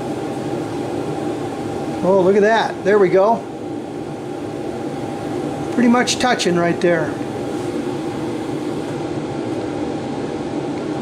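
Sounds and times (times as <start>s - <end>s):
electric machine hum: 0.0s - 11.0s.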